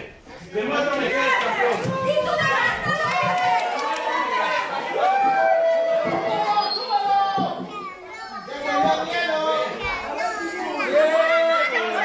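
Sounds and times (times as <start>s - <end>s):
crowd shouting and chattering: 0.0s - 12.0s
children's voices: 0.9s - 3.6s, 7.3s - 12.0s.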